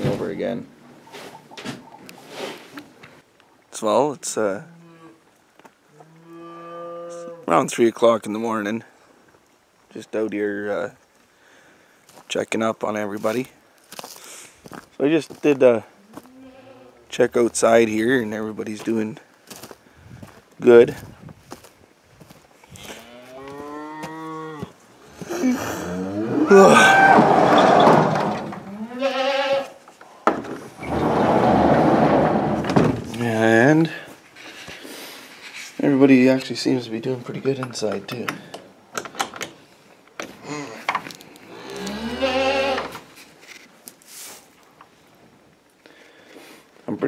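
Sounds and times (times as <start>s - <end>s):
cow mooing: 5.9s - 7.5s, 22.8s - 29.7s, 41.5s - 42.9s
long moo-like call: 5.9s - 7.5s, 41.5s - 42.9s.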